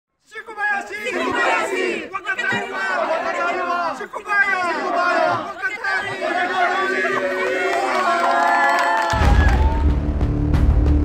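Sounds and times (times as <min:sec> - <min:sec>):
crowd chanting: 0:00.5 - 0:09.1.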